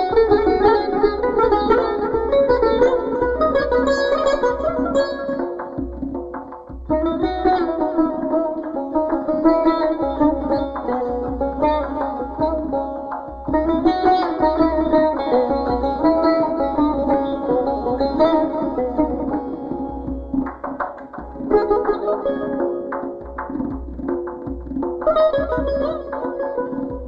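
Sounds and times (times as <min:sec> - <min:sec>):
goblet drum: 0:00.0 - 0:27.0
plucked lute runs and tremolo: 0:00.0 - 0:27.0.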